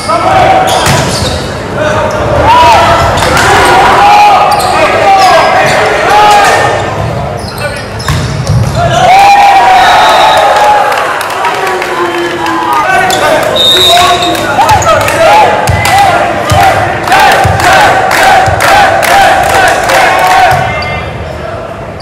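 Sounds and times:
voices echoing in a hall: 0.0s - 22.0s
shoe squeaks: 7.3s - 8.6s, 13.1s - 14.8s
volleyball hits: 8.0s - 8.9s, 14.6s - 20.8s
people shouting calls: 11.8s - 21.1s.

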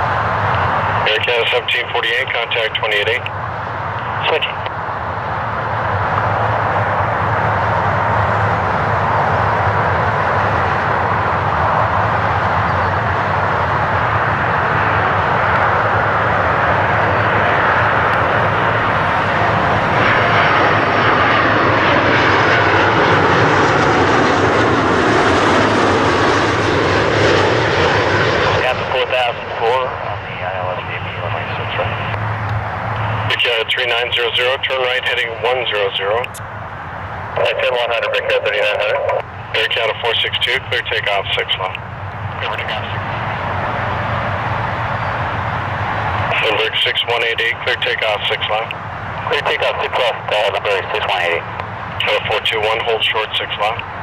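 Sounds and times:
jet engines roaring overhead: 0.0s - 54.0s.

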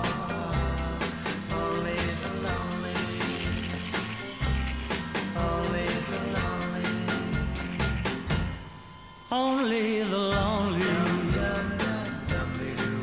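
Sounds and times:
instrumental music with drums and bass: 0.0s - 8.6s, 10.3s - 13.0s.

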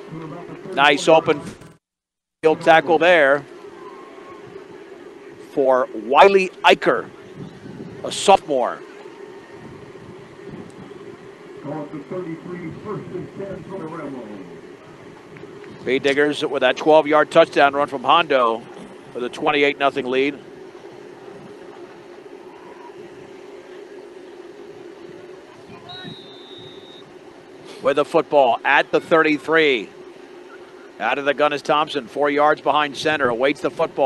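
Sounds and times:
stadium background noise: 0.0s - 1.7s, 2.4s - 34.0s
steady low hum: 0.0s - 1.7s, 2.4s - 34.0s
faint distant voices: 20.4s - 26.3s
thin high tone: 21.2s - 27.2s.

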